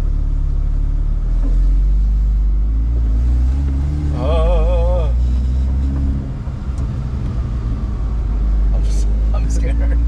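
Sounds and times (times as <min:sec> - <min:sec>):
car engine low hum: 0:00.0 - 0:10.0.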